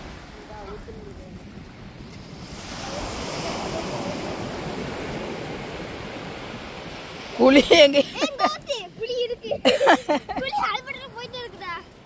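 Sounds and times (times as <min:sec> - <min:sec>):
surf washing on sandy beach: 0:00.0 - 0:12.0
wind on microphone: 0:00.0 - 0:12.0.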